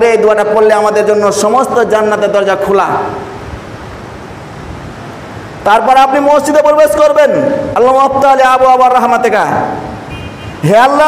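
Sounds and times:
man's voice echoing: 0:00.0 - 0:03.3, 0:05.6 - 0:10.0, 0:10.6 - 0:11.0.

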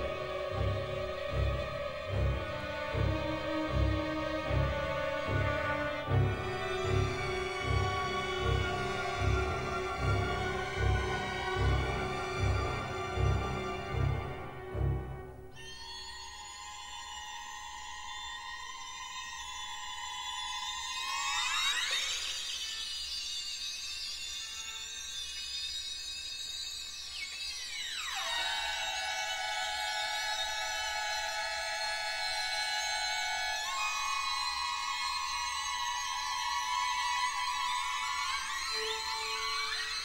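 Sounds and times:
eerie orchestral high chord: 0:00.0 - 0:15.5.

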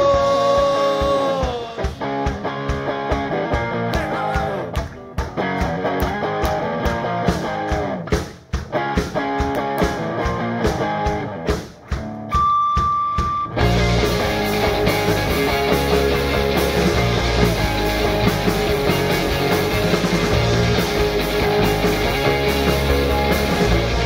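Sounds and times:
lead guitar lines: 0:00.0 - 0:24.0
rock band playing: 0:00.0 - 0:24.0.

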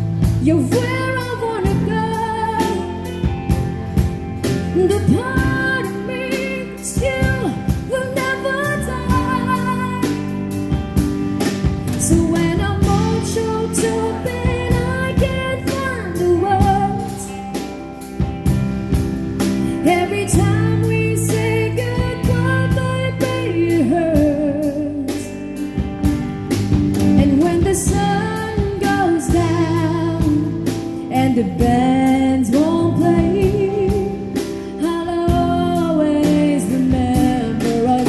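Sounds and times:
woman singing: 0:00.0 - 0:03.6, 0:04.5 - 0:10.8, 0:11.9 - 0:17.6, 0:19.7 - 0:25.6, 0:27.0 - 0:38.0
drum kit playing: 0:00.0 - 0:38.0
electric guitar chords: 0:00.0 - 0:38.0.

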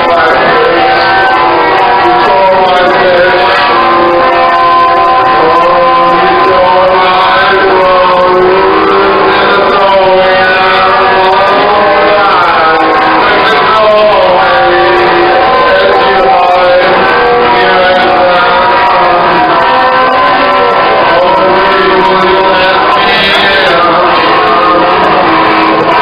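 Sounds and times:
loud distorted rock band: 0:00.0 - 0:26.0.

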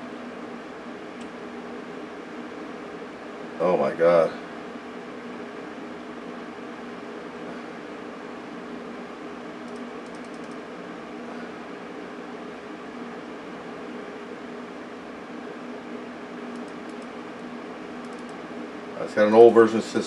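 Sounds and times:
computer fan and drives humming: 0:00.0 - 0:20.0.

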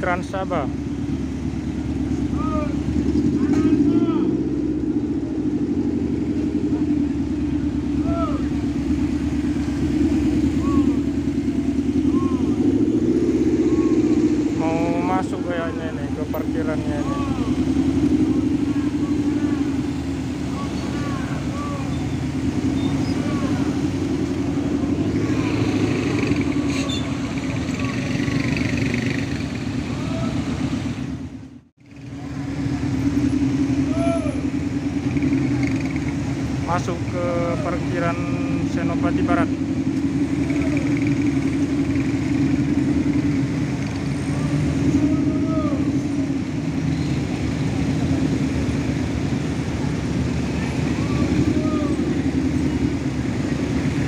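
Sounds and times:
bus diesel engine rumbling: 0:00.0 - 0:54.0.

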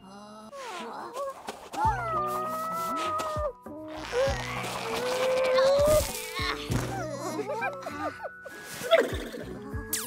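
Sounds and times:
background music: 0:01.7 - 0:10.0.

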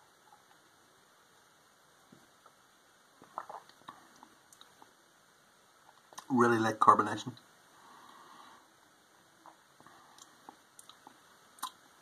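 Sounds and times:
lip smacks and tongue clicks: 0:03.2 - 0:04.9, 0:05.8 - 0:06.3, 0:09.4 - 0:11.8
soft breath: 0:07.7 - 0:08.9, 0:09.8 - 0:10.6.

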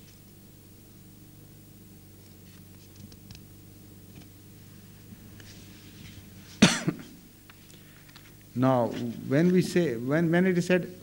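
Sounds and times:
man coughing: 0:06.6 - 0:07.2.

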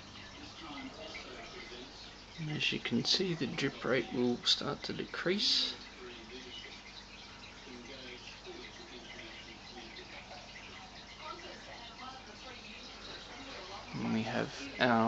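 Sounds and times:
faint indistinct voices: 0:00.0 - 0:15.0.

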